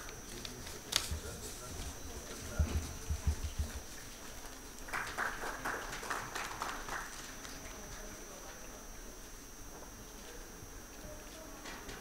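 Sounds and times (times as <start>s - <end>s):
faint indistinct voices: 0.0s - 12.0s
thin high whine: 0.0s - 12.0s.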